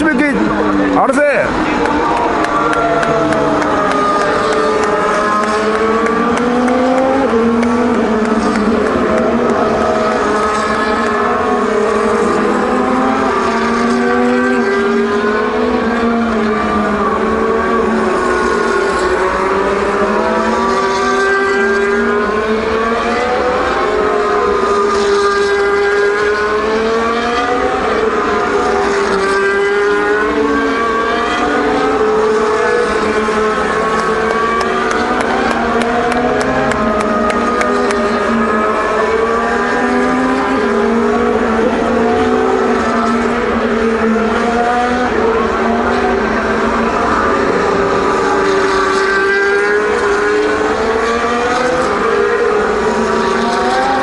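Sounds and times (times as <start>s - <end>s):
racing cars passing: 0.0s - 54.0s.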